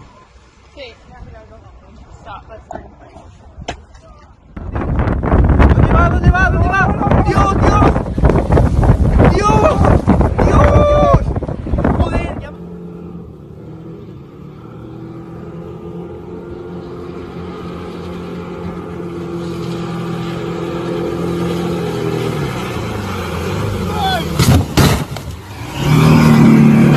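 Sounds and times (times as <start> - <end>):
person shouting: 9.3 - 11.2, 23.9 - 24.4
motorboat engine drone: 12.4 - 24.4.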